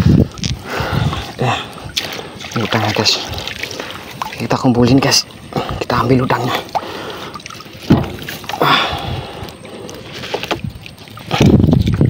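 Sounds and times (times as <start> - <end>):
water against boat hull: 0.0 - 12.0
wet net trap handling: 7.4 - 11.9.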